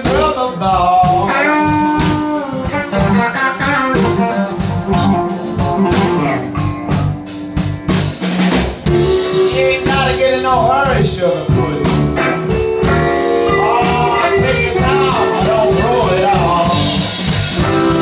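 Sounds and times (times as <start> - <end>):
bass guitar: 0.0 - 18.0
blues band playing: 0.0 - 18.0
drum kit beat: 0.0 - 18.0
electric guitars bending notes: 0.0 - 18.0.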